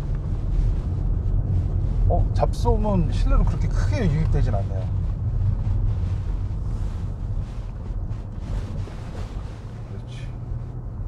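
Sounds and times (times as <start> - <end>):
road and tyre rumble inside car: 0.0 - 11.0.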